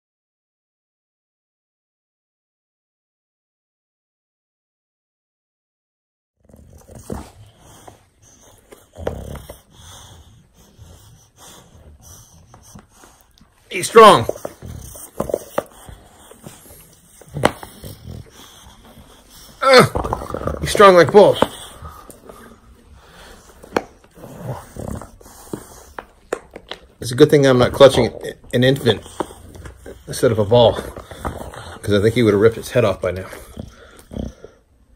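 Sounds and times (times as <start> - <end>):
dog breathing: 6.4 - 34.9
dog noises: 6.4 - 34.9.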